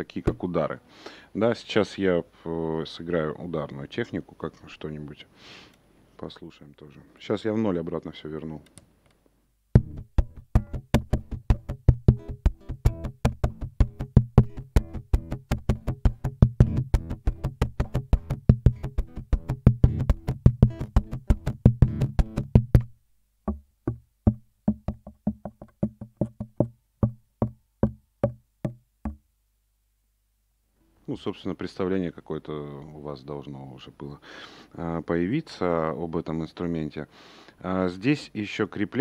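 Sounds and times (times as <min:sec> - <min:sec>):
percussive fingerstyle guitar: 0:00.1 - 0:00.6, 0:09.8 - 0:29.2.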